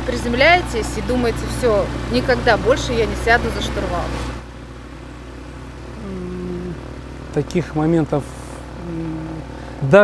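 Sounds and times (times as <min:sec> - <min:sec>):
low engine hum: 0:00.0 - 0:10.0
voice trailing off: 0:06.0 - 0:06.9.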